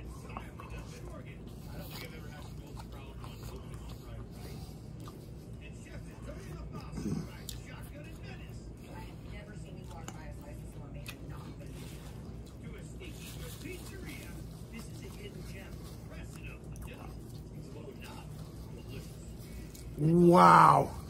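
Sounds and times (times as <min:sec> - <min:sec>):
person chewing food: 0:00.0 - 0:06.0, 0:06.6 - 0:08.0, 0:09.8 - 0:21.0
low background hum: 0:00.0 - 0:21.0.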